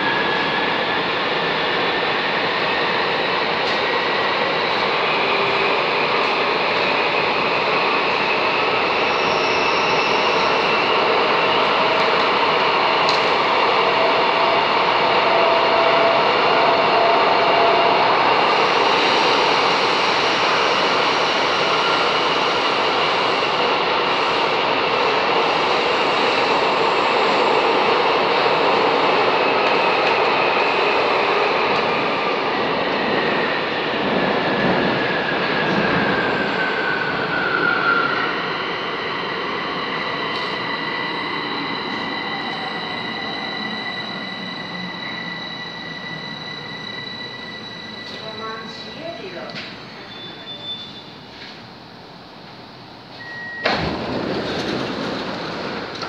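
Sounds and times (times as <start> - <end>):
train wheel and tunnel noise: 0.0 - 56.0.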